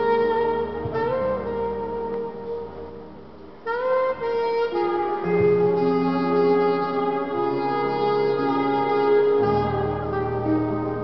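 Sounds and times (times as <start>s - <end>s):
saxophone and french horn music: 0.0s - 11.0s.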